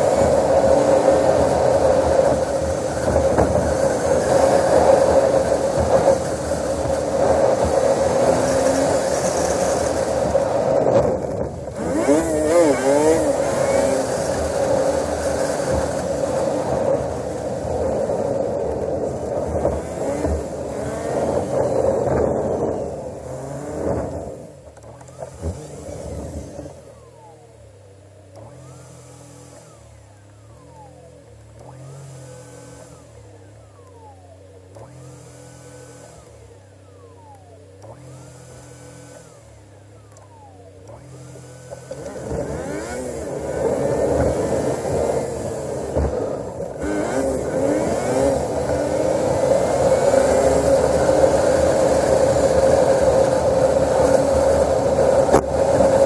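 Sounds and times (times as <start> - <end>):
car engine: 0.0 - 56.0
road noise: 0.0 - 56.0.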